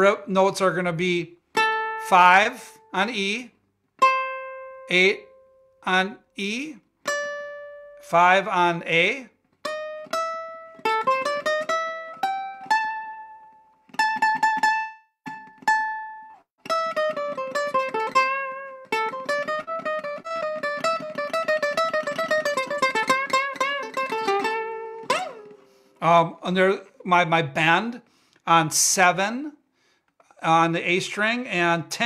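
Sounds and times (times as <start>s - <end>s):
ukulele picked notes: 9.6s - 25.8s.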